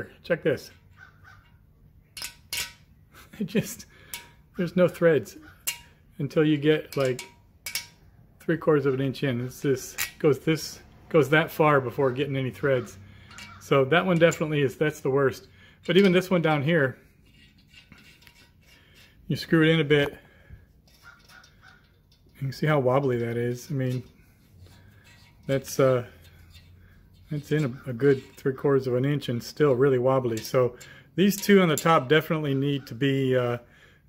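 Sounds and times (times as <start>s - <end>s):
metal bolt clicking on metal: 2.2s - 2.9s, 6.8s - 8.0s, 9.9s - 10.4s.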